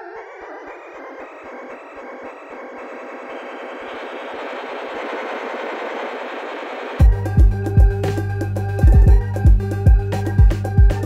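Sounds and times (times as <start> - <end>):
faint ticking pulse: 0.0 - 11.0
synthesizer noise swell: 0.0 - 11.0.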